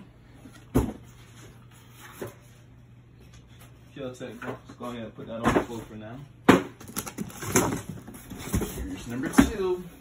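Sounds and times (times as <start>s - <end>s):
objects thumping on floor: 0.6s - 1.1s.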